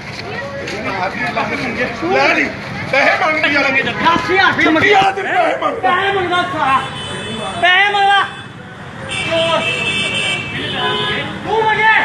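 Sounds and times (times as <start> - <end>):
street traffic: 0.0 - 12.0
men talking: 0.5 - 12.0
vehicle horn honking: 6.7 - 7.6, 8.2 - 11.4.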